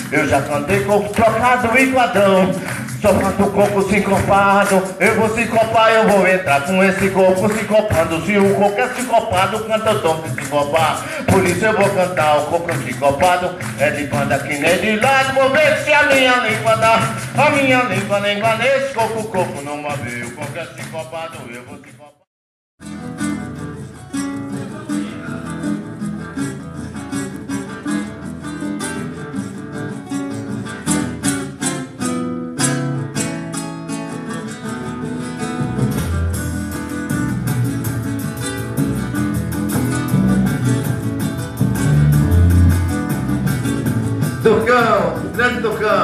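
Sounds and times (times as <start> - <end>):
acoustic guitar strummed: 0.0 - 22.2, 22.8 - 46.0
person's voice: 44.4 - 46.0.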